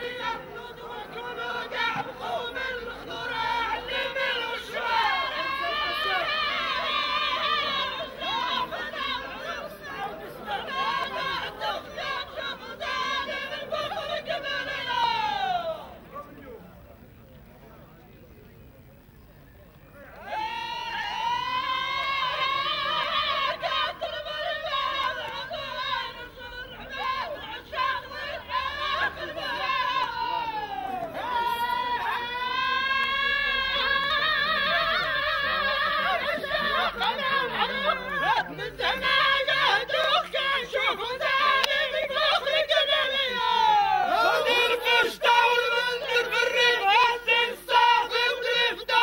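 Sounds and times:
overlapping voices chattering: 0.0 - 49.0.

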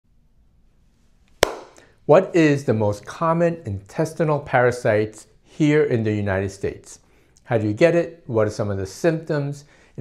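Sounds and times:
sharp hand clap: 1.4 - 1.8.

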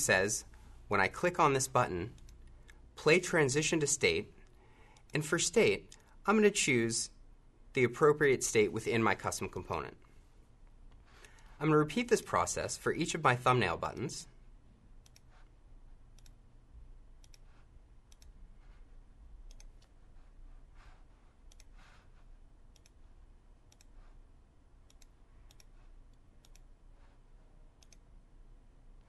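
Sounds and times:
computer mouse clicks: 2.1 - 2.8, 5.8 - 6.2, 10.9 - 11.5, 15.0 - 15.5, 16.1 - 16.4, 17.2 - 18.4, 19.4 - 20.0, 21.4 - 22.0, 22.7 - 23.1, 23.7 - 24.2, 24.8 - 27.1, 27.8 - 28.1.

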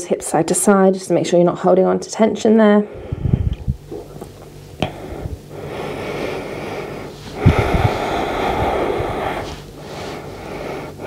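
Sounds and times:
person breathing deeply: 2.9 - 3.8, 4.8 - 11.0
soft low bumps: 7.2 - 9.8.

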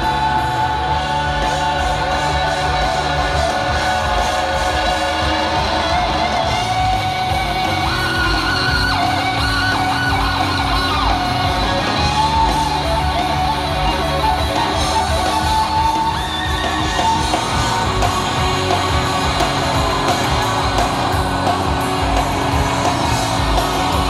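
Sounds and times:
electric guitar bending notes: 0.0 - 24.0
rock band playing live: 0.0 - 24.0
stadium crowd: 0.0 - 24.0.

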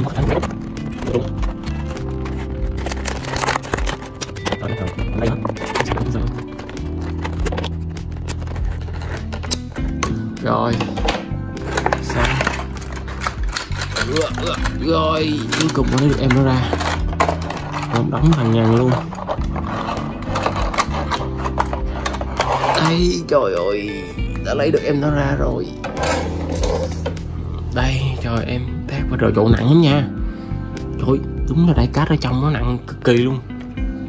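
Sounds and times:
plastic packaging clicks and rustles: 0.0 - 9.6, 10.8 - 23.0
background music with bass line: 0.0 - 34.0.

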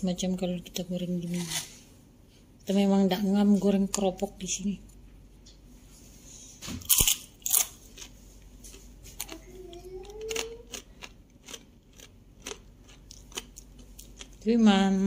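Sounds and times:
crunching cracker being chewed: 6.8 - 14.4.

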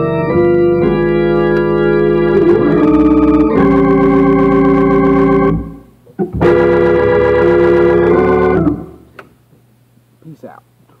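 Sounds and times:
organ chord: 0.0 - 9.1
faint steady hum: 0.0 - 11.0.

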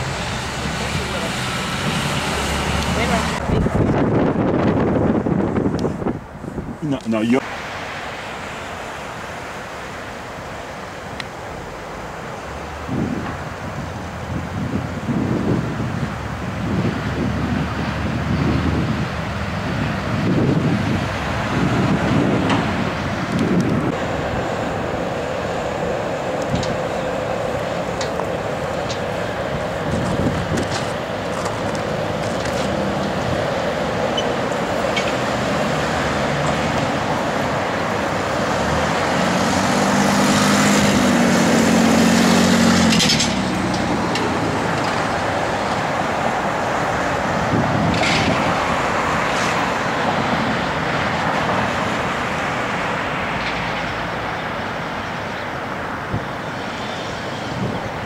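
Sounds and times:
city street traffic noise: 0.0 - 58.0
vehicle engine low drone: 0.0 - 58.0.

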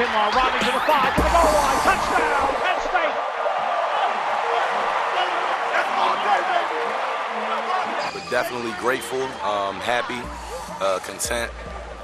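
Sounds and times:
stadium crowd cheering: 0.0 - 12.0.

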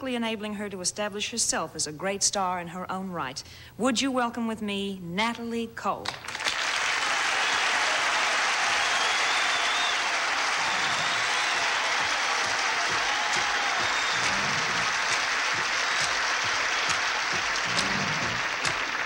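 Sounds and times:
audience applauding: 6.2 - 19.0.

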